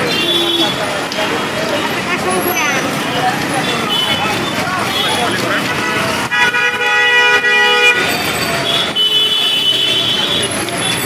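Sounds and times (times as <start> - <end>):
people talking: 0.0 - 6.6, 7.2 - 11.0
road traffic noise: 0.0 - 11.0.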